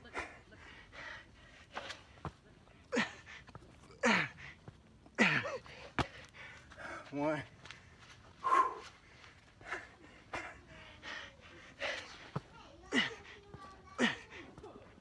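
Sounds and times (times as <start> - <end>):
man breathing hard and grunting: 8.4 - 12.3.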